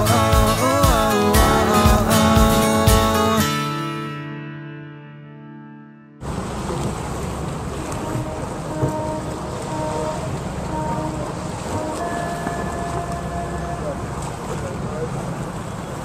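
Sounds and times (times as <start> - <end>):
boat motor running: 0.0 - 3.5, 6.2 - 16.0.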